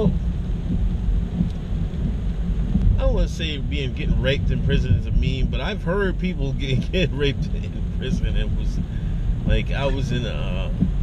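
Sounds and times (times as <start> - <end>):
car cabin engine and tyre rumble: 0.0 - 11.0
rain: 0.0 - 11.0.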